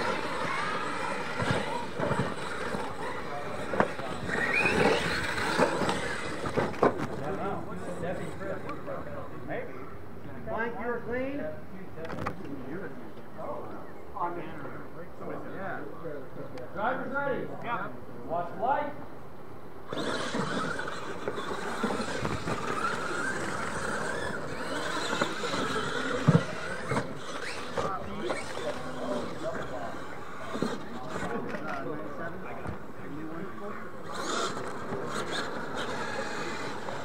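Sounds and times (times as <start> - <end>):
toy truck motors whining: 0.0 - 9.1, 19.8 - 37.0.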